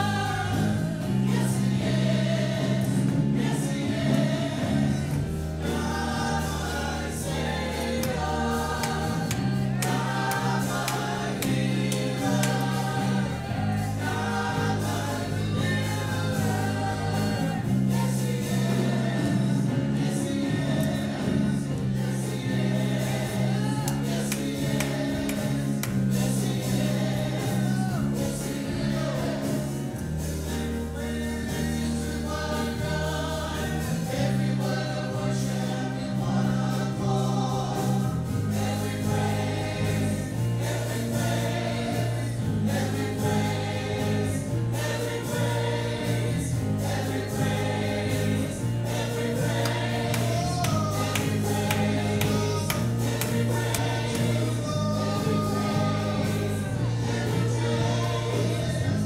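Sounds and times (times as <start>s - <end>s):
held bass notes: 0.0s - 59.0s
people singing: 0.0s - 59.0s
worship band playing: 0.0s - 59.0s.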